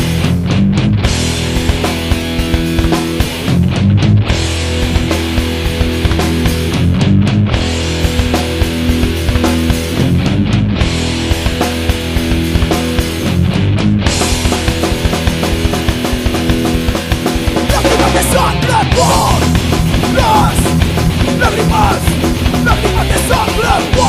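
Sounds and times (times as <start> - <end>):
bass guitar: 0.0 - 24.0
distorted guitars: 0.0 - 24.0
fast drums: 0.0 - 24.0.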